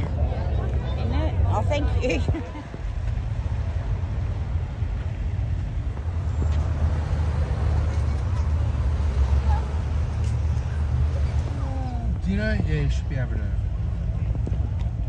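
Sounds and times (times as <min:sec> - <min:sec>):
faint voices: 0:00.0 - 0:15.0.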